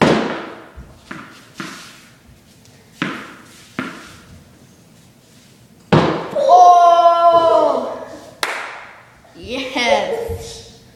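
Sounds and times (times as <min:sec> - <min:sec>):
tennis balls smacking wall and floor: 0:00.0 - 0:04.5, 0:05.8 - 0:06.5, 0:08.4 - 0:09.0.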